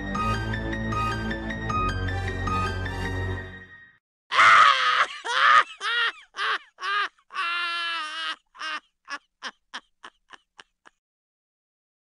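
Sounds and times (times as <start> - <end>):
comic cries falling in pitch: 4.3 - 10.6.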